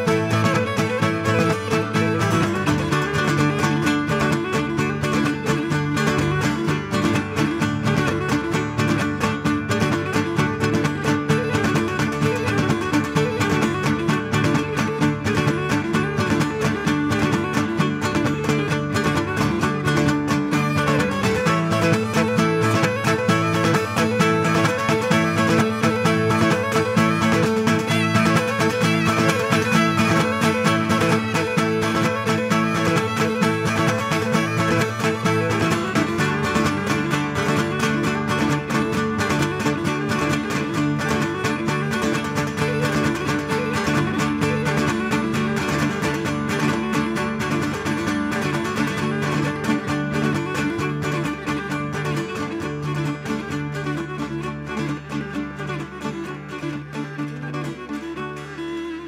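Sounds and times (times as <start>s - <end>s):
folk dance music on lyra and lutes: 0.0s - 59.0s.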